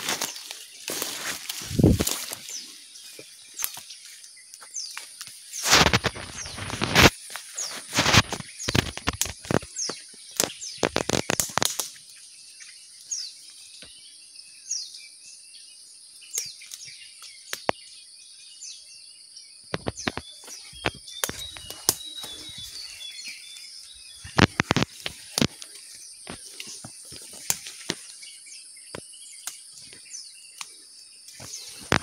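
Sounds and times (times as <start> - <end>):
footsteps crackling through undergrowth: 0.0 - 12.2, 19.7 - 32.0
small birds chirping: 0.0 - 32.0.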